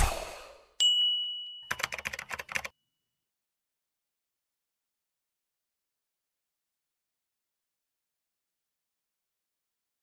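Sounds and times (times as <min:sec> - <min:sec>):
bright ding: 0:00.8 - 0:01.7
rapid keyboard typing clicks: 0:01.7 - 0:02.7.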